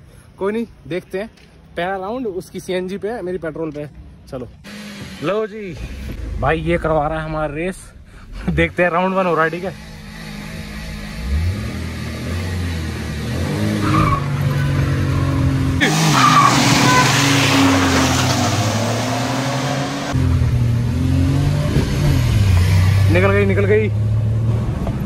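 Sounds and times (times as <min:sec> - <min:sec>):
car engine revving hard: 0:08.4 - 0:24.8
cars accelerating roughly: 0:08.4 - 0:25.0.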